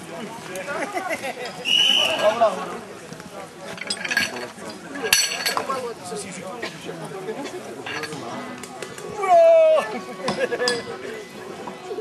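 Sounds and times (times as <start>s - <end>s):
chatter of voices: 0.0s - 12.0s
light metallic clinks: 3.7s - 5.7s.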